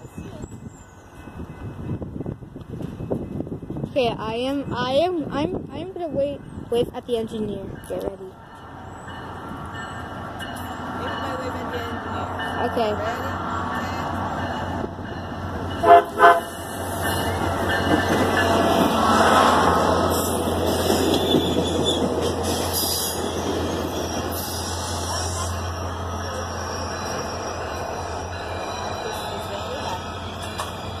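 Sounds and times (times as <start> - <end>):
train engine and wheel noise: 0.0 - 31.0
train horn toots: 15.8 - 16.6.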